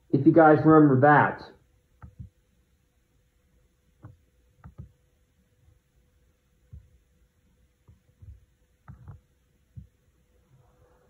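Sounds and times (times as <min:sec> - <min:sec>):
faint steady hum: 0:00.0 - 0:11.0
low dull thuds: 0:07.9 - 0:10.0.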